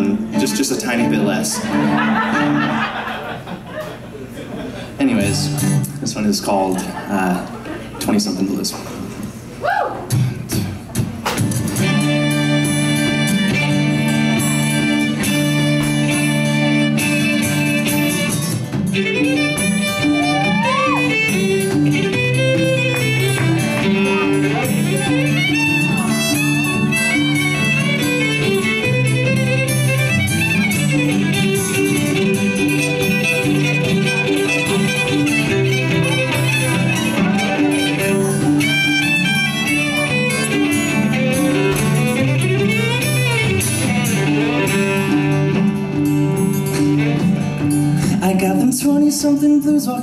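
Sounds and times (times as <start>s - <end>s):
acoustic guitar: 0.0s - 50.0s
violin: 11.7s - 48.1s
cello: 11.8s - 47.9s.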